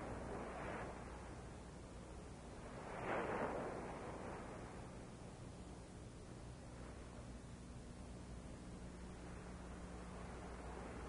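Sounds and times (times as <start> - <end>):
old film soundtrack hiss: 0.0 - 11.0.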